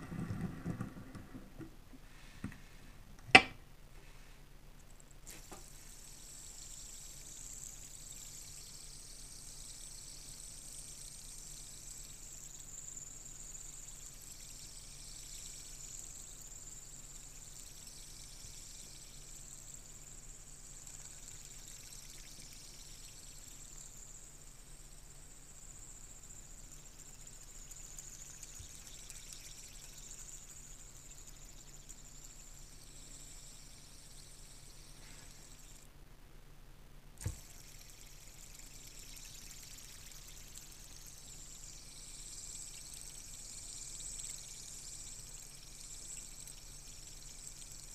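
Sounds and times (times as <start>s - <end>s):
fidget spinner whirring: 5.2s - 35.9s, 37.2s - 47.9s.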